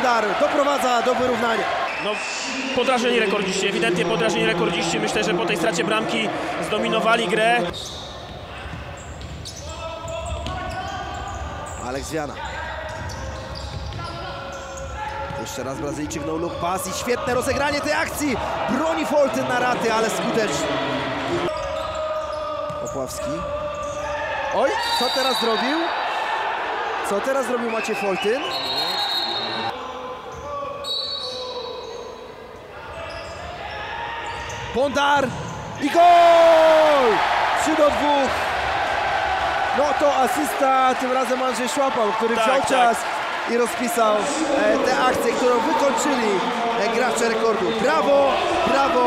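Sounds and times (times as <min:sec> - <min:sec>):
crowd voices: 0:00.0 - 0:07.7, 0:10.0 - 0:30.8, 0:32.6 - 0:49.0
crowd chanting: 0:17.0 - 0:24.6, 0:36.4 - 0:49.0
referee's whistle blasts: 0:24.8 - 0:25.9, 0:27.7 - 0:29.7, 0:30.8 - 0:32.2.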